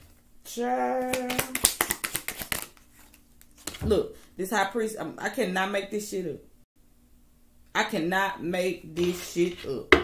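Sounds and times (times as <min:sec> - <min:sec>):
cards being shuffled: 0:01.0 - 0:03.8.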